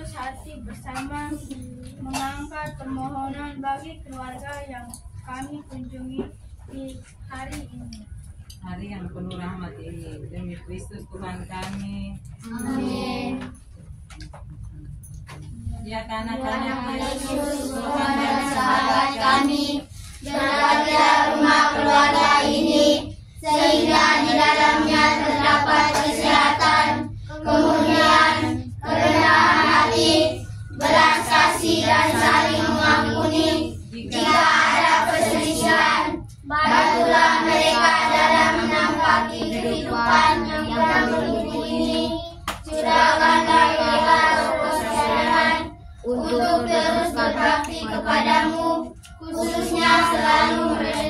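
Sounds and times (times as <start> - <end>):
children singing in unison: 12.5 - 13.5, 16.5 - 51.0.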